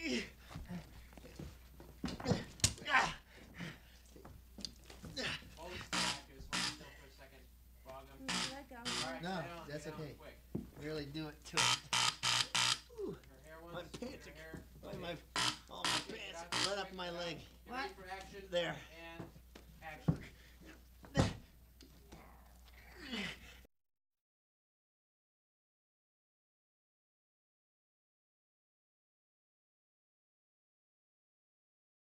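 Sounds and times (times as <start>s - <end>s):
person speaking: 5.0s - 7.0s, 8.2s - 10.2s, 12.4s - 19.0s.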